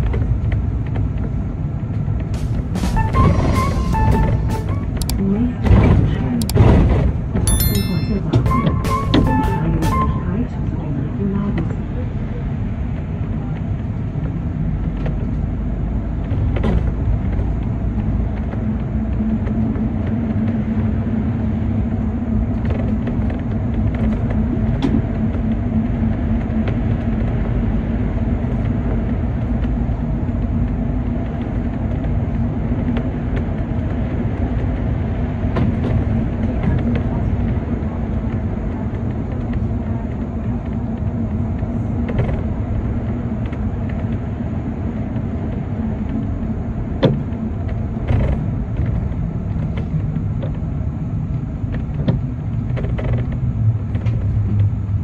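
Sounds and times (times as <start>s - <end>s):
bus engine and road rumble: 0.0s - 55.0s.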